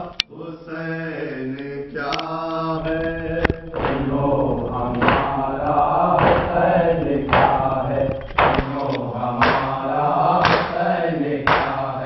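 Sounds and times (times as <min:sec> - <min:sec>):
men chanting a lament: 0:00.0 - 0:12.0.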